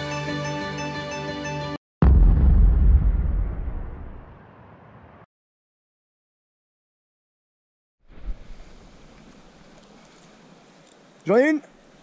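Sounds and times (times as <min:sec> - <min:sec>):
deep boom with low rumble: 0:02.0 - 0:04.4.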